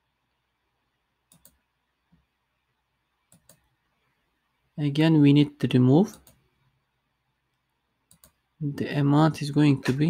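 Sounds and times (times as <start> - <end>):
computer mouse clicks: 1.3 - 2.3, 3.3 - 3.7, 6.1 - 6.4, 8.1 - 8.4.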